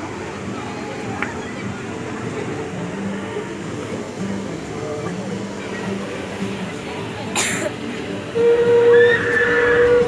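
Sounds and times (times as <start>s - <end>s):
steam whistle blowing: 8.3s - 10.0s.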